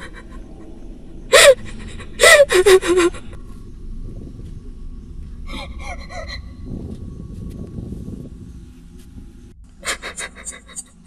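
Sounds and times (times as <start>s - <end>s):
woman sobbing: 0.0s - 3.4s.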